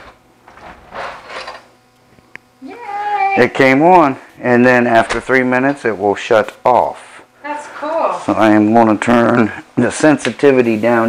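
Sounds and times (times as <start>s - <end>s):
door opening with scraping: 0.5s - 1.7s.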